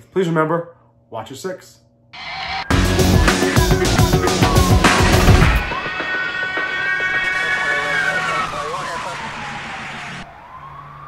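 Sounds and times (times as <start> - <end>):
police siren wailing: 2.2 - 3.0, 4.4 - 11.0.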